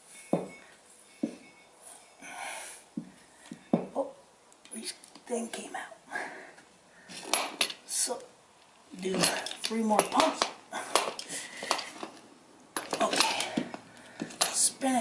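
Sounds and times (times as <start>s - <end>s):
metal clinks and knocks: 0.1s - 2.2s, 7.1s - 7.8s, 8.6s - 14.7s.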